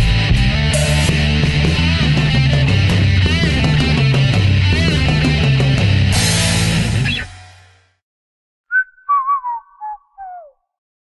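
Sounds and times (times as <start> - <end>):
whistled jingle tune: 8.7 - 10.6.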